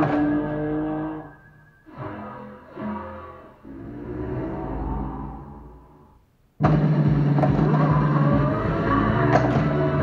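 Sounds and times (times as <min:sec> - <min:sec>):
race car engine sound effect revving: 0:00.0 - 0:10.0.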